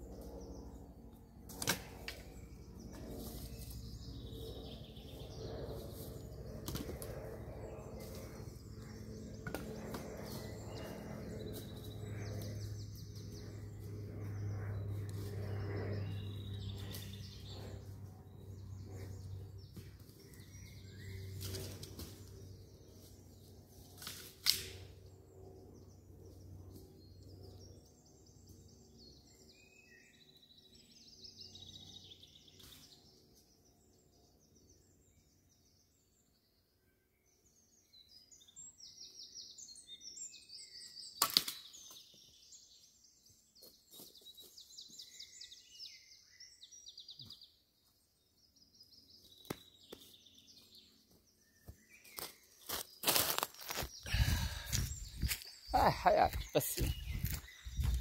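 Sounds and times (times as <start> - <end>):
small birds singing: 0.0 - 58.0.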